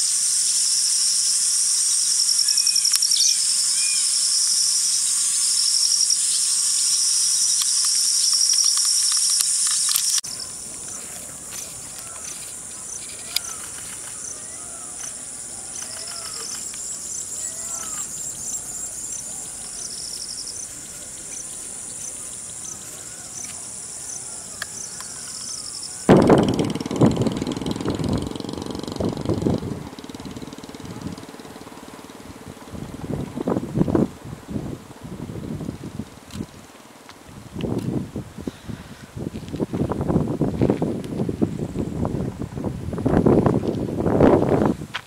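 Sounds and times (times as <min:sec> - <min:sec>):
insect chorus trilling: 0:00.0 - 0:38.7.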